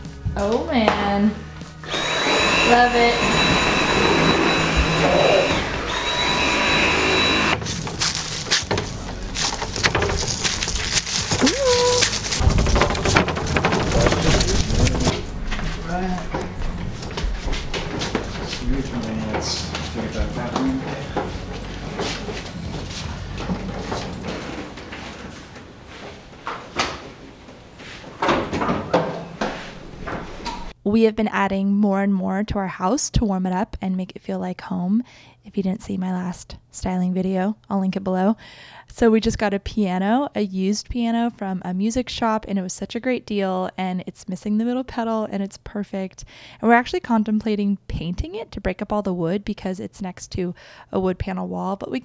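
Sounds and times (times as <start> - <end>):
vacuum cleaner whine: 1.8 - 7.6
piano scraping on floor: 1.8 - 26.4
knocks and clicks: 12.4 - 18.4
low voices: 18.5 - 22.2.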